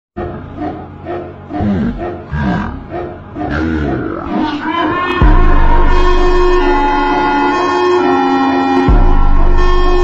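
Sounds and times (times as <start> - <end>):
deep growling synth: 0.2 - 7.2
music with steady bass: 1.6 - 10.0.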